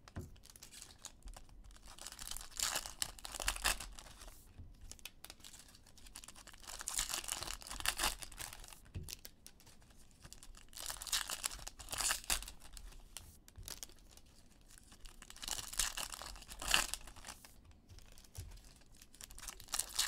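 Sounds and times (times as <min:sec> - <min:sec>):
foil wrappers tearing and crinkling: 0:01.7 - 0:09.3, 0:10.2 - 0:17.4, 0:18.0 - 0:20.0.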